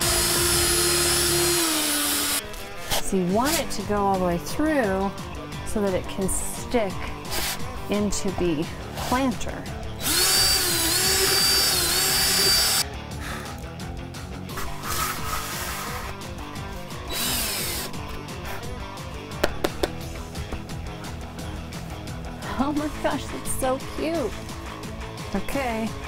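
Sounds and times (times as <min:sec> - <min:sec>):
cordless drill boring through foam: 0:00.0 - 0:02.4, 0:10.0 - 0:12.8, 0:17.0 - 0:18.0.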